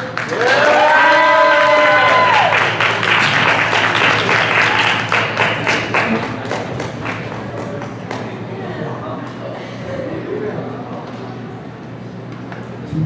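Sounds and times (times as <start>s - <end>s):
audience applause and cheering: 0.0s - 9.2s.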